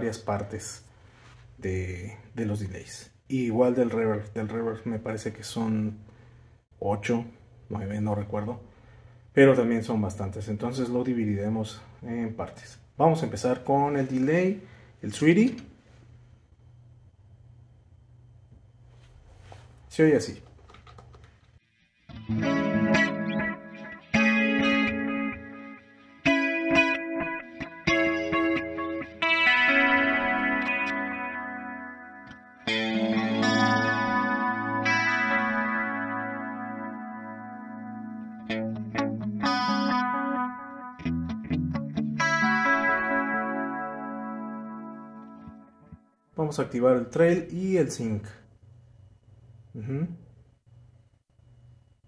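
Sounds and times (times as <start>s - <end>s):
electric guitar with echoing delay: 22.0s - 46.1s.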